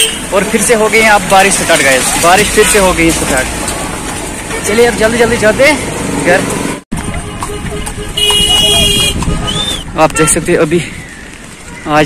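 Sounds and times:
street traffic noise: 0:00.0 - 0:12.0
vehicle horn honking: 0:07.0 - 0:09.8.

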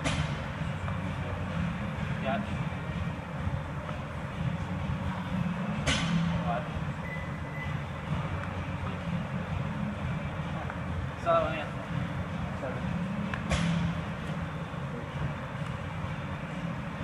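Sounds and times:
low indoor room rumble: 0:00.0 - 0:17.0.

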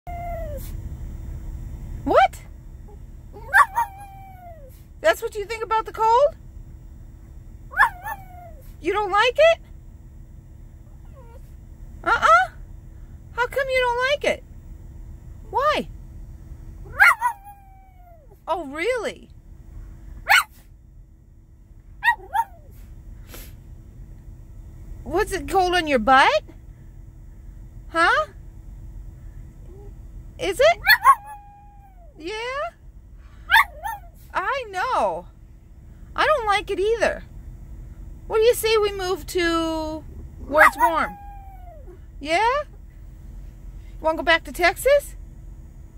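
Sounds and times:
small dog howling and yelping: 0:00.0 - 0:00.8, 0:02.9 - 0:04.8, 0:07.7 - 0:08.8, 0:10.9 - 0:11.5, 0:16.8 - 0:18.9, 0:20.3 - 0:20.6, 0:22.0 - 0:22.8, 0:29.7 - 0:32.7, 0:33.5 - 0:34.5, 0:40.4 - 0:42.6
low vehicle rumble: 0:00.0 - 0:45.9
puff-like noise: 0:22.7 - 0:23.8.

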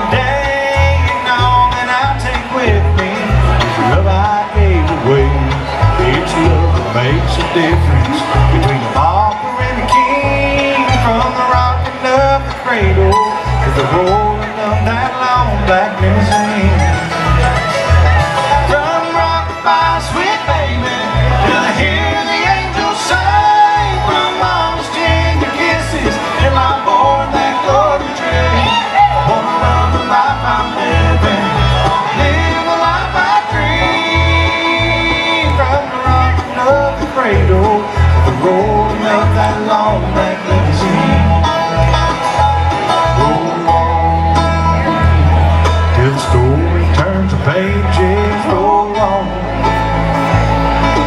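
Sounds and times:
acoustic guitar: 0:00.0 - 0:51.0
banjo: 0:00.0 - 0:51.0
bluegrass band playing: 0:00.0 - 0:51.0
fiddle: 0:00.0 - 0:51.0
mandolin: 0:00.0 - 0:51.0.

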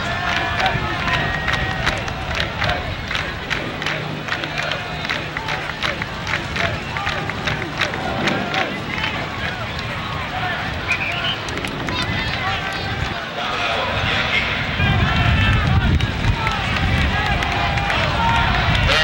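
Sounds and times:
crowd talking: 0:00.0 - 0:19.0
low rumble: 0:00.1 - 0:13.2.

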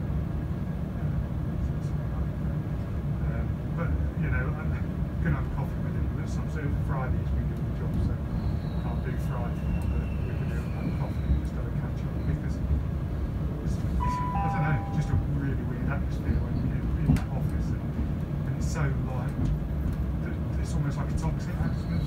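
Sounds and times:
train rumbling on rails: 0:00.0 - 0:22.0
two-note falling chime: 0:14.0 - 0:15.4.

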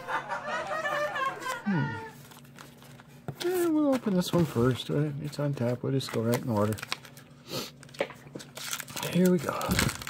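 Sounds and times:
plastic wrapper tearing and crinkling: 0:02.2 - 0:10.0.

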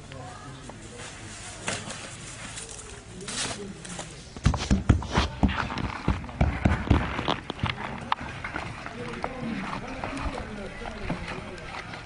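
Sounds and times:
indistinct voices talking: 0:05.2 - 0:12.0.

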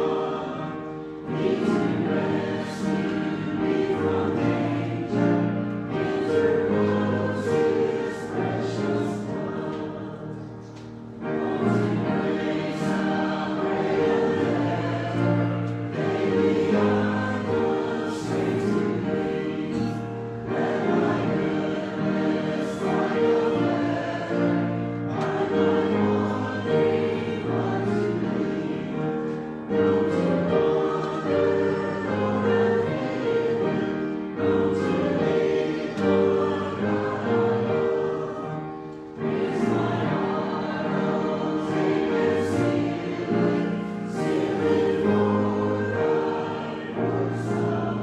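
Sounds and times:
congregation singing a hymn: 0:00.0 - 0:48.0.

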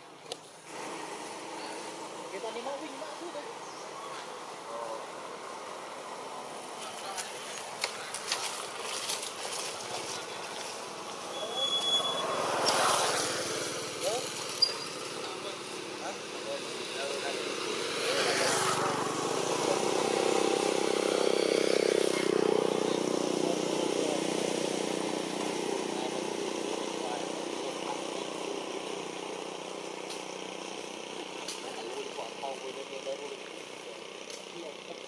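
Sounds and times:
vehicle engine passing by: 0:00.7 - 0:32.0
faint voices: 0:01.4 - 0:21.4.

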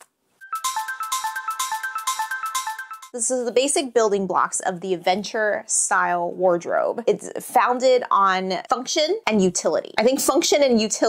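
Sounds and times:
bright music sting: 0:00.4 - 0:03.1.

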